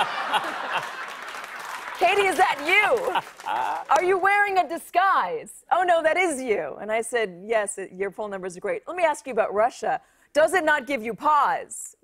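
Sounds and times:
audience laughing: 0:00.0 - 0:04.0
audience applauding: 0:00.0 - 0:04.2.

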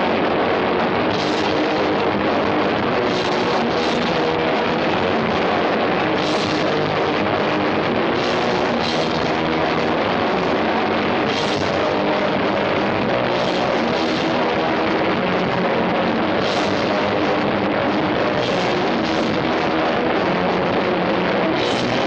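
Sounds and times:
electric guitars: 0:00.0 - 0:22.0
drum kit: 0:01.0 - 0:22.0.

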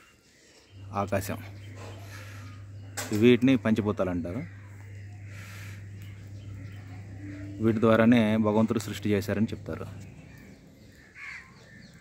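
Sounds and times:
faint outdoor background noise: 0:00.0 - 0:12.0
crow cawing: 0:01.7 - 0:03.1, 0:04.3 - 0:07.7, 0:10.0 - 0:12.0.

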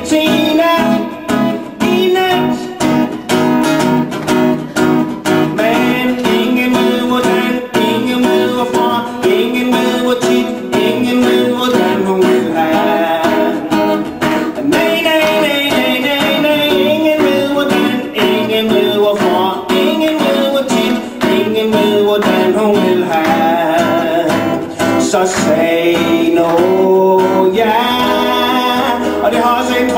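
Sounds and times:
man singing: 0:00.0 - 0:03.4, 0:05.2 - 0:29.9
acoustic guitar strumming: 0:00.0 - 0:29.9.

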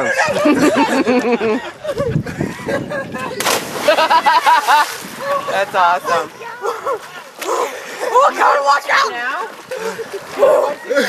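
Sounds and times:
diving board thumping: 0:03.2 - 0:06.5
loud water splash: 0:03.4 - 0:05.8.

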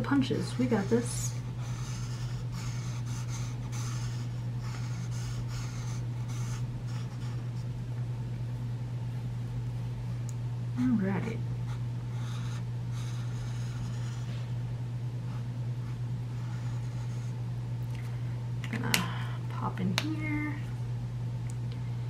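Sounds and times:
steady low hum: 0:00.0 - 0:22.0
marker scratching over paper: 0:00.4 - 0:07.6, 0:12.1 - 0:14.3, 0:16.3 - 0:17.4.

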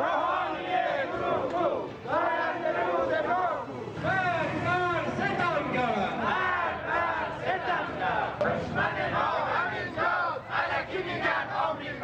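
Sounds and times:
crowd chanting slogans: 0:00.0 - 0:12.0.

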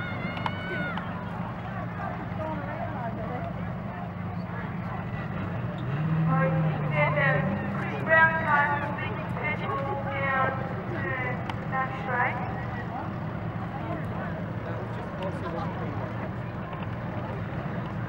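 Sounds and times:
race car engines running: 0:00.0 - 0:18.0
spectators talking: 0:00.0 - 0:18.0.

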